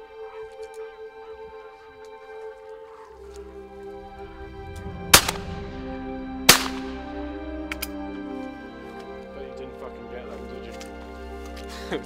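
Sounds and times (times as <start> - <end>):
background music: 0.0 - 12.0
shotgun shots with echo: 5.2 - 5.6, 6.5 - 7.0.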